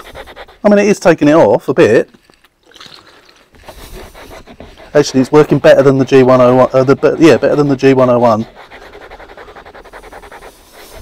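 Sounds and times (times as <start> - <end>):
cloth rubbing leather seat: 3.6 - 11.0.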